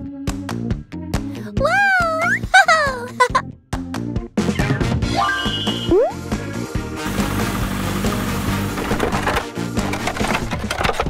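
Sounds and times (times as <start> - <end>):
cheerful background music: 0.0 - 11.0
small hard objects clattering: 7.1 - 11.0.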